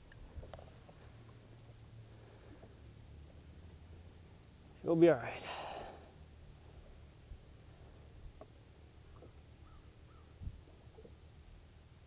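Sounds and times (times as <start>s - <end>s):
distant bird calling: 7.6s - 11.2s.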